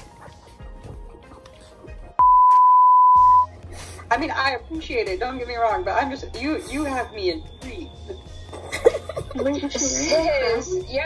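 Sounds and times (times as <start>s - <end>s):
electronic censor beep: 2.2s - 3.5s.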